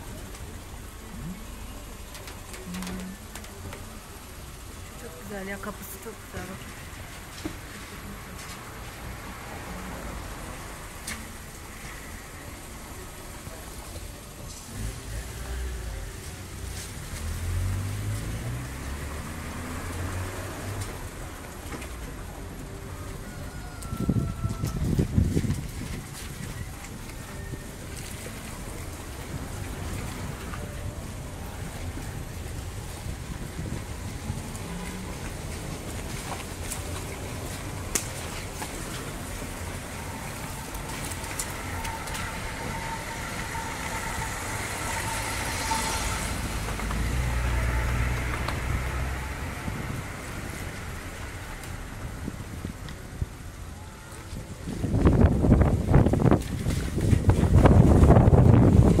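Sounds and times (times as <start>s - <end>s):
car engine and road rumble: 0.0s - 59.0s
wind buffeting microphone: 23.8s - 59.0s.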